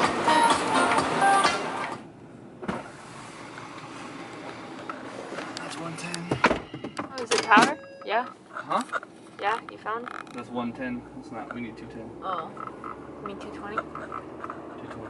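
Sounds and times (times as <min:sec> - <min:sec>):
road noise inside car: 0:00.0 - 0:15.0.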